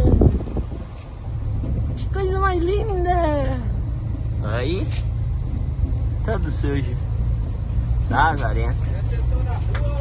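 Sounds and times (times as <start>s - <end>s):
truck engine low drone: 0.0s - 10.0s.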